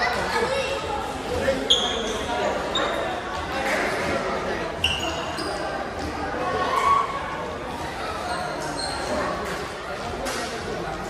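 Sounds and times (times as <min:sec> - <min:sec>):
voices echoing in gym: 0:00.0 - 0:11.0
shoes squeaking on court: 0:01.6 - 0:03.1, 0:04.8 - 0:06.1, 0:08.2 - 0:09.5.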